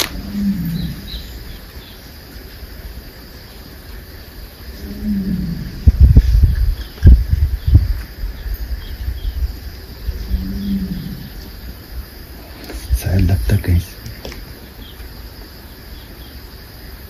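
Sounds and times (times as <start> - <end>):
tiger moaning calls: 0.0 - 1.6, 4.6 - 6.2, 10.0 - 14.2
faint bird chirps: 0.2 - 2.1, 4.7 - 11.6
low irregular rumbling buffets: 2.3 - 15.8.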